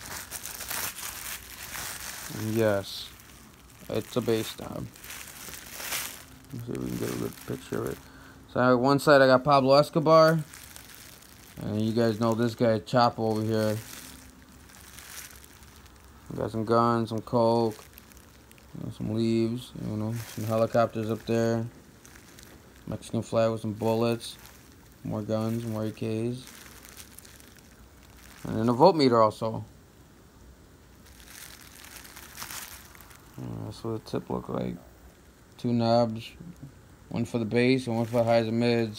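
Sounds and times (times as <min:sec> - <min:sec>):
bubble wrap crinkling: 0:00.0 - 0:29.7, 0:30.7 - 0:38.9.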